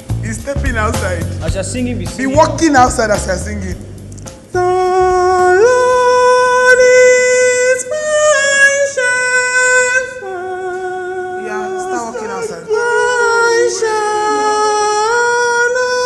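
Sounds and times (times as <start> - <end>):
man singing unaccompanied: 0.0 - 3.8, 4.5 - 16.0.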